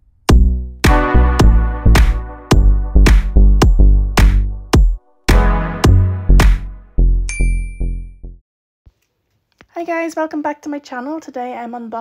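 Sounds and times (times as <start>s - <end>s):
deep bass note: 0.3s - 7.3s
bright bell ding: 7.3s - 8.2s.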